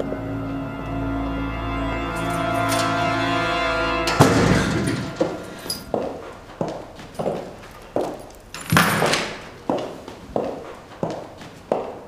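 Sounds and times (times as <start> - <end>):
footsteps on hard floor: 4.2 - 12.0.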